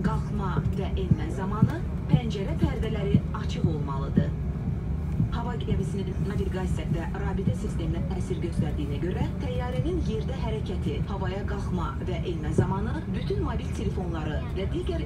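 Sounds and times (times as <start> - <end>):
people talking: 0.0 - 4.4, 5.3 - 15.0
aircraft cabin hum: 0.0 - 15.0.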